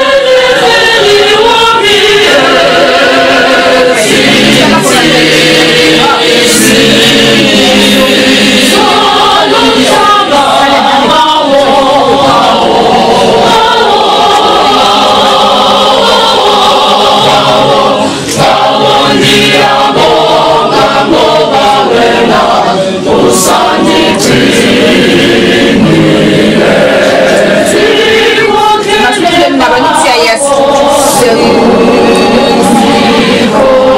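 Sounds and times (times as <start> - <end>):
choir singing gospel song: 0.0 - 33.9.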